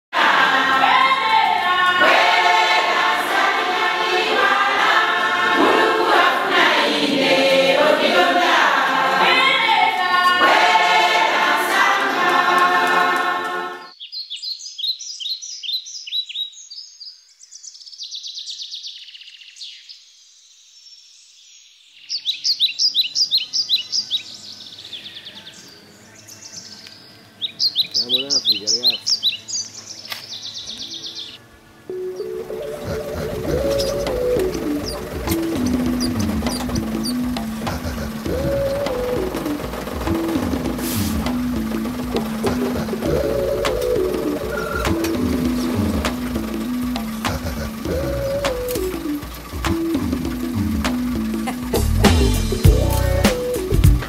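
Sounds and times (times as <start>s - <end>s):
women's choir singing: 0.1s - 13.9s
birds trilling: 22.0s - 54.0s.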